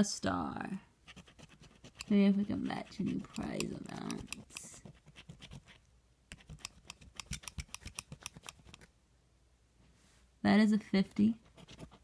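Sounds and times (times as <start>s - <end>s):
coin scraping a scratch ticket: 1.1s - 5.8s, 6.4s - 8.9s.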